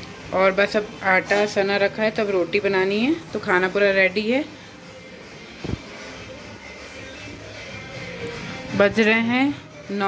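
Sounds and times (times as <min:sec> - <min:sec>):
kitchen background noise: 0:00.0 - 0:10.0.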